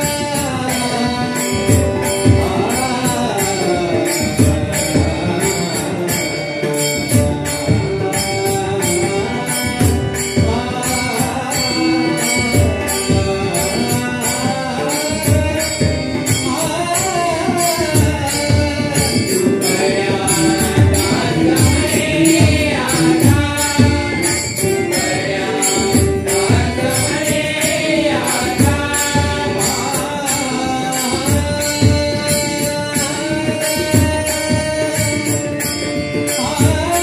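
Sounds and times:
harmonium held tones: 0:00.0 - 0:37.0.

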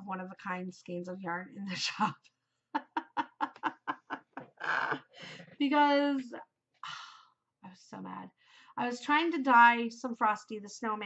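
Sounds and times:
woman laughing: 0:02.7 - 0:05.3.

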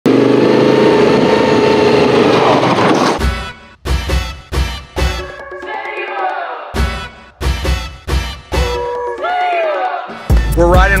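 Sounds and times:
music with heavy bass beat: 0:10.3 - 0:11.0.

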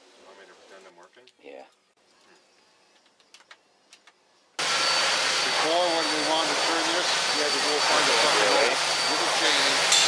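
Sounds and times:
thin high machine whine: 0:04.6 - 0:10.0
workshop machinery hiss: 0:04.6 - 0:10.0.

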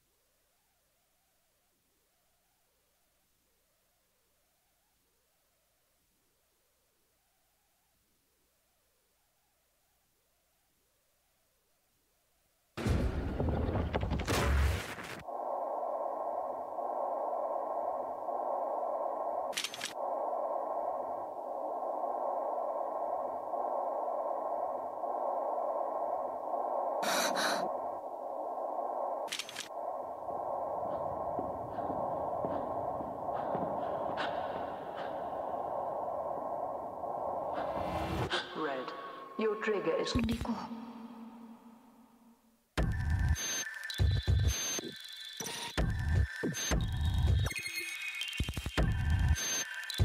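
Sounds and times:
sharp clicks: 0:19.5 - 0:20.0, 0:29.3 - 0:29.7
static-like electronic drone: 0:42.8 - 0:50.0.

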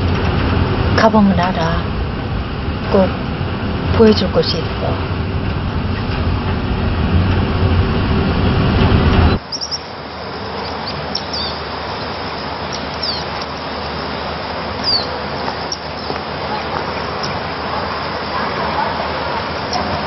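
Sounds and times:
car interior rumble: 0:00.0 - 0:20.0
birds chirping: 0:09.3 - 0:20.0.

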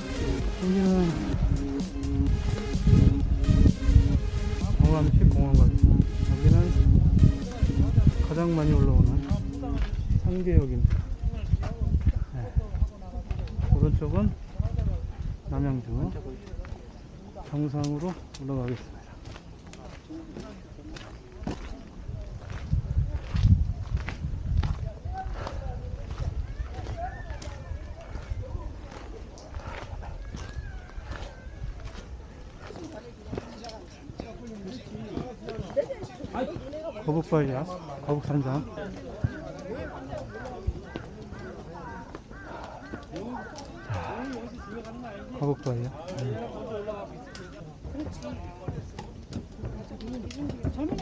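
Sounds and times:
low rumble: 0:00.0 - 0:10.3
people talking: 0:00.0 - 0:18.9, 0:24.7 - 0:31.5, 0:32.2 - 0:51.0
footsteps on gritty rock: 0:16.5 - 0:37.1, 0:37.8 - 0:51.0
footsteps on wooden stairs: 0:29.0 - 0:36.8, 0:40.3 - 0:43.6, 0:47.8 - 0:51.0.

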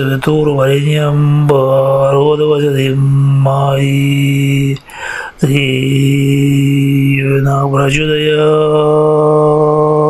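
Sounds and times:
man chanting in long held notes: 0:00.0 - 0:10.0.

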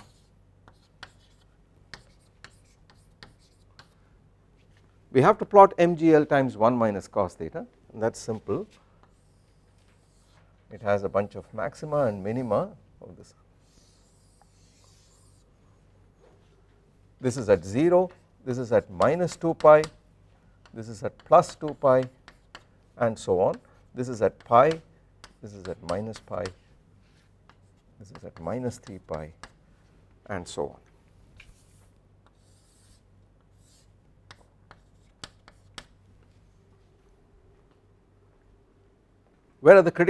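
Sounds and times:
chalk scratching on blackboard: 0:00.0 - 0:04.0, 0:08.7 - 0:10.4, 0:13.6 - 0:15.5, 0:21.3 - 0:22.7, 0:31.5 - 0:35.9
chalk tapping on board: 0:00.0 - 0:04.0, 0:19.0 - 0:20.0, 0:20.6 - 0:22.7, 0:24.4 - 0:26.6, 0:27.4 - 0:29.6, 0:33.6 - 0:36.0.

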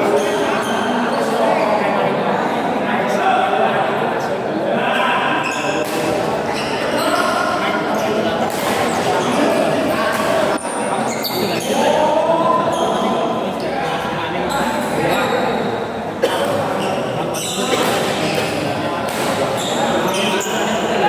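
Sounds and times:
rackets striking shuttlecock: 0:08.4 - 0:09.2, 0:17.8 - 0:19.6.

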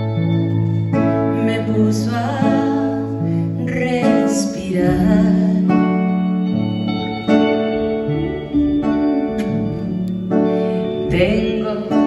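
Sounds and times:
acoustic guitar chords: 0:00.0 - 0:12.0.

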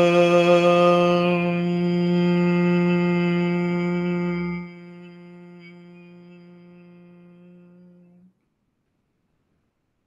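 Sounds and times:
person chanting long hum: 0:00.0 - 0:08.4.

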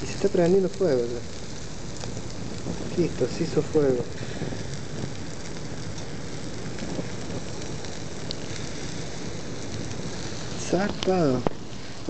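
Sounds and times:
fire hissing and crackling: 0:00.0 - 0:12.0.

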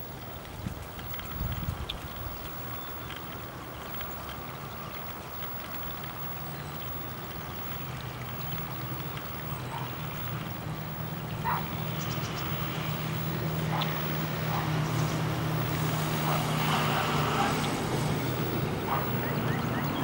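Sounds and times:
rushing water: 0:00.0 - 0:20.0
low engine drone: 0:05.0 - 0:20.0.

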